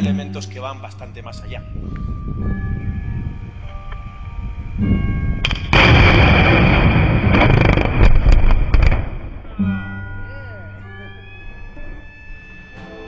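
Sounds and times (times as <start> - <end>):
loud heavy rumbling noise: 4.2 - 9.6
sharp cracks: 5.4 - 9.6
mine blast explosion: 5.4 - 10.1.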